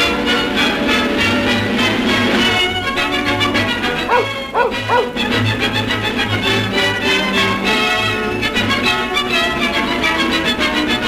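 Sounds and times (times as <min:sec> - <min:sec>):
dog barking: 0:04.0 - 0:05.3.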